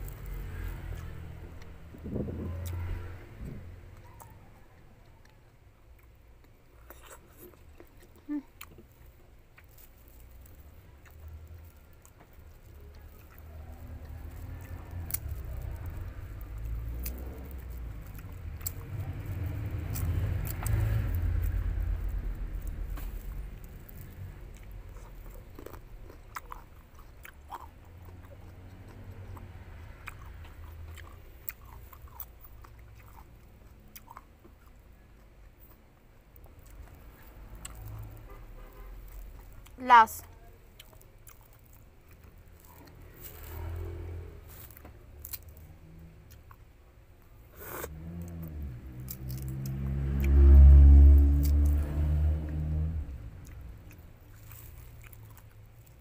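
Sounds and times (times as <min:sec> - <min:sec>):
chewing fruit: 0:00.0 - 0:56.0
tearing fruit rinds: 0:00.0 - 0:56.0.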